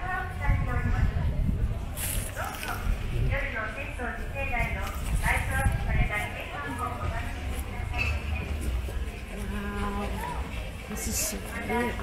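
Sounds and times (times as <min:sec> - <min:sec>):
public-address announcement: 0:03.3 - 0:12.0.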